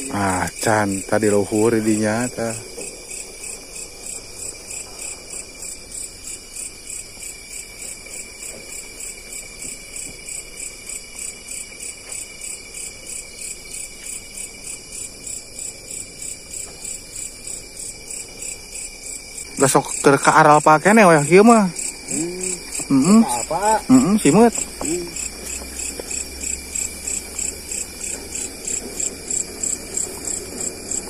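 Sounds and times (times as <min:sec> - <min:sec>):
crickets chirping: 0:00.0 - 0:31.0
steady high insect trill: 0:00.0 - 0:31.0.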